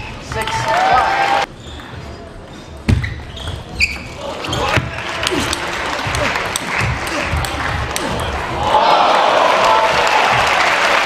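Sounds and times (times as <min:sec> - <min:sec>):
murmur of voices in hall: 0:00.0 - 0:11.0
shoes squeaking on floor: 0:01.5 - 0:05.0.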